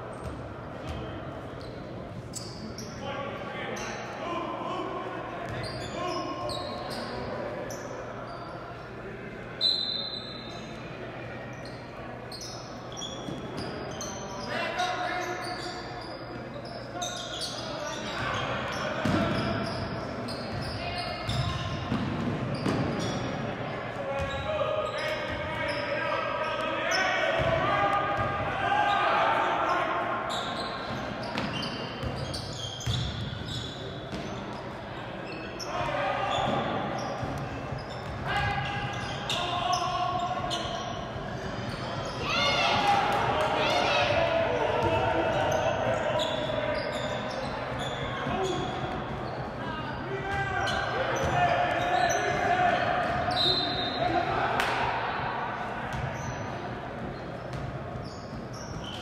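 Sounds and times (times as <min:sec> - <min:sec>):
echoing shouts: 0:24.0 - 0:31.2, 0:35.5 - 0:41.1, 0:41.7 - 0:56.8.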